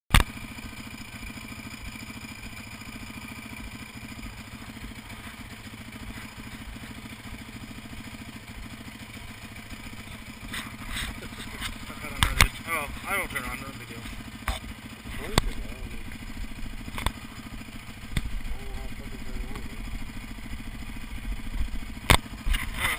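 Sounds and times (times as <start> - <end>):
motorcycle engine idling: 0.1 - 22.9.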